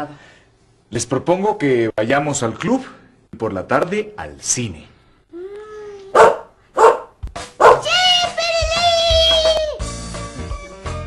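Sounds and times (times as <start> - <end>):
small dog barking: 6.2 - 7.9
dog high held cry: 6.2 - 8.0.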